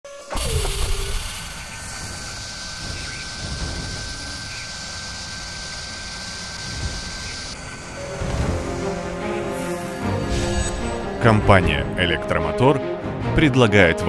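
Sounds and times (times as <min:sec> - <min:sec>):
thin high whine: 0:00.0 - 0:11.6
hiss: 0:00.1 - 0:10.7
mechanical drone with low rumble: 0:00.1 - 0:12.3.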